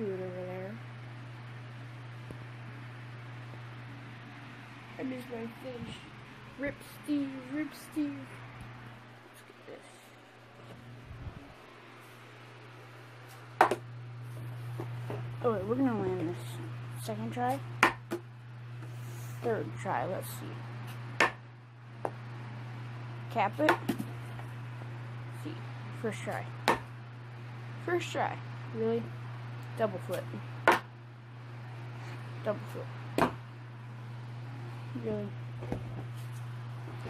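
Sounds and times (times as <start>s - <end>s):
steady low hum: 0.0s - 37.0s.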